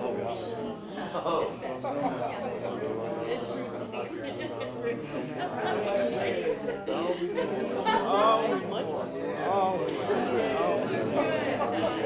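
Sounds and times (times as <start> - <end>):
voices praying aloud: 0.0 - 12.0.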